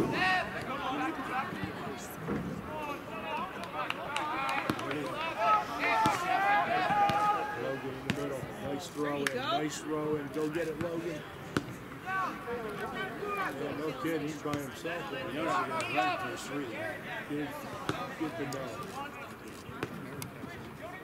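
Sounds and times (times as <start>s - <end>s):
players and spectators calling out: 0.0s - 21.0s.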